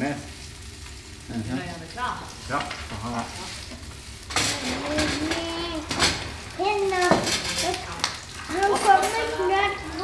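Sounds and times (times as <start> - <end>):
fish cakes sizzling in pan: 0.0 - 10.0.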